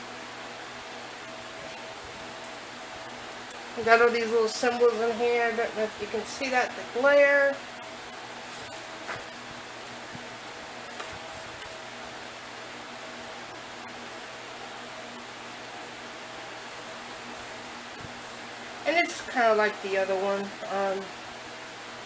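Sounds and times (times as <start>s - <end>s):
faint hum: 0.0s - 22.0s
room noise hiss: 0.0s - 22.0s.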